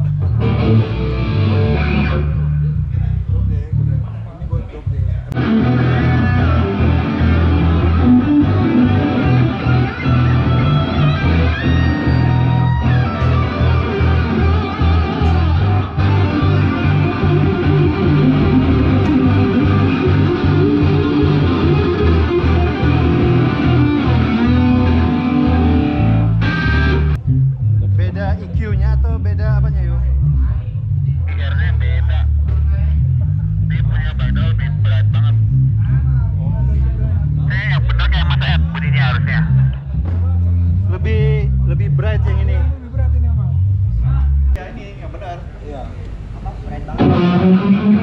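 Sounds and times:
electric guitars: 0.0 - 2.7, 5.3 - 27.2, 47.0 - 48.0
bass guitar: 0.0 - 44.6, 47.0 - 48.0
rock band playing loudly: 0.3 - 2.4, 5.4 - 27.2, 47.0 - 48.0.

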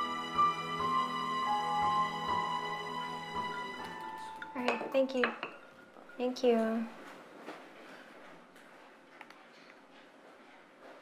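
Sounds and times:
dishes and glassware clinking: 3.9 - 7.2.

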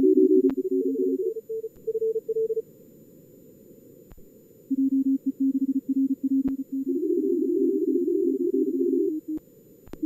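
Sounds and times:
lower-pitched morse signal: 0.0 - 2.6, 4.7 - 9.4
morse code tones: 0.0 - 2.6, 4.7 - 9.4
faint receiver hiss: 7.9 - 10.0.

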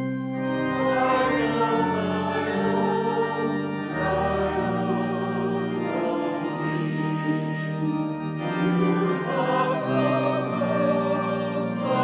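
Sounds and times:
sustained organ chords: 0.0 - 12.0
choir singing a hymn: 0.4 - 12.0.

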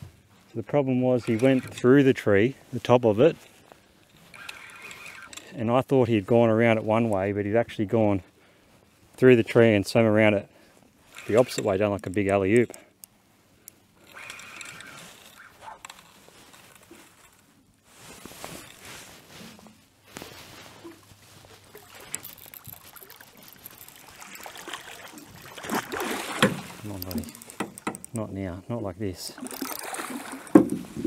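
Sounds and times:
fishing reel being wound: 1.2 - 1.8, 4.1 - 5.6, 11.1 - 12.3, 14.0 - 16.9, 21.8 - 25.2
rustling gear: 3.4 - 5.6, 10.7 - 28.2
water sloshing against kayak hull: 13.9 - 28.2, 29.3 - 31.0.

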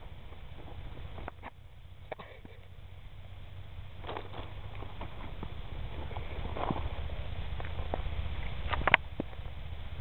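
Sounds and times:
wind rumble on microphone: 0.0 - 10.0.

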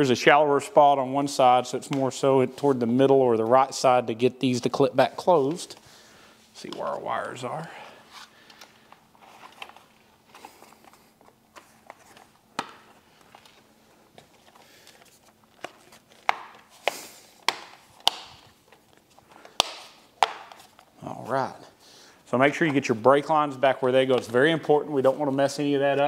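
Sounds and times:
plastic handling noise: 4.7 - 21.0, 22.4 - 26.0
sharp plastic snaps and clicks: 15.6 - 20.6.

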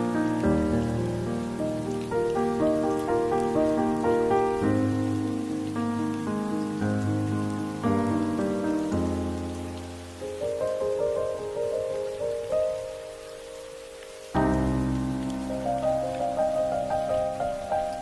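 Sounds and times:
steady rain: 0.0 - 18.0.

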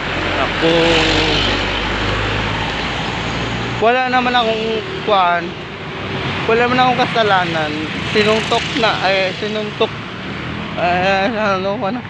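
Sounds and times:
roadside traffic noise: 0.0 - 12.0
man speaking: 0.4 - 1.8, 3.8 - 5.6, 6.4 - 10.0, 10.8 - 12.0.

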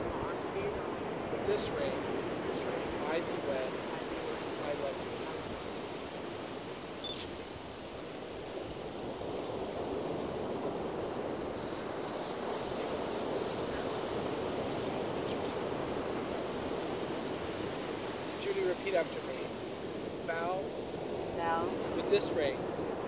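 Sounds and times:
ocean surf: 0.0 - 23.0
wind: 0.0 - 23.0.

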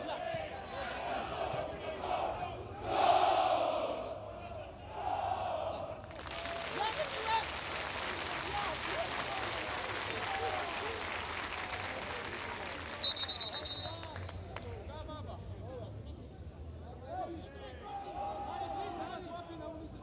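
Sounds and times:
stadium crowd clapping and shouting: 5.0 - 14.9.

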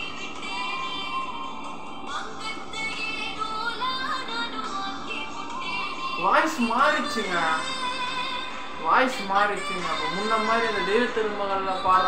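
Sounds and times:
person singing with instrumental backing: 0.0 - 12.0.

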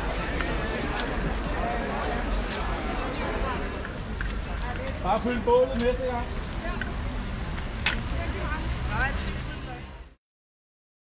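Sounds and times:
people talking: 0.0 - 7.3, 7.9 - 10.1
low crowd rumble: 0.0 - 10.2.

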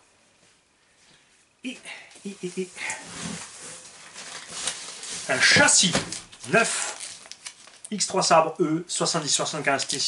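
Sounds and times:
plastic bags rustling and crinkling: 2.2 - 8.4, 9.3 - 10.0.

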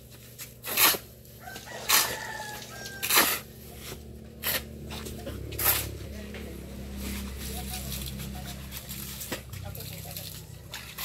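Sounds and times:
hoes chopping and scraping sand: 0.0 - 6.2
rooster crowing: 1.4 - 3.5.

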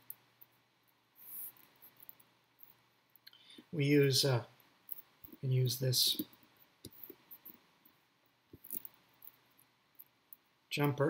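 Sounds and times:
wires rustling: 0.0 - 11.0.

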